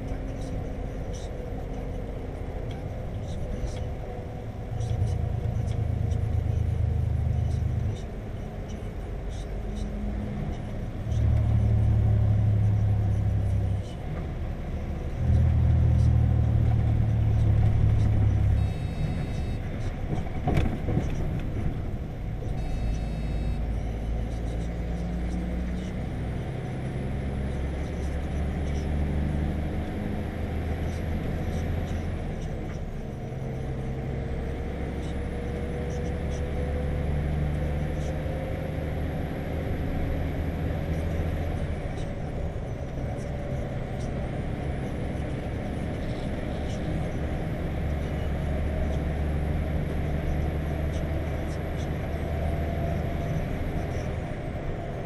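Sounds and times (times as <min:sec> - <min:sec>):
lorry diesel engine rumbling: 0:00.0 - 0:55.0.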